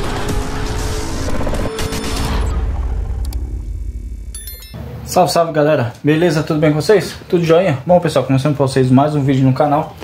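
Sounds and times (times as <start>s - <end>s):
low rumble: 0.0s - 4.3s
short bright chime: 4.4s - 4.9s.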